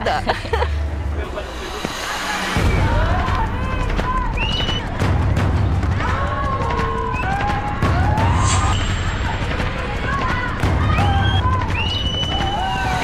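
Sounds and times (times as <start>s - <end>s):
children chattering and calling out: 1.5s - 5.0s, 8.8s - 12.2s.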